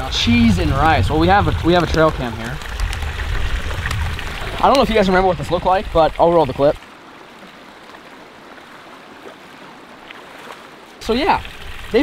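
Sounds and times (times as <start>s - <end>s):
creek water rushing: 0.0s - 12.0s.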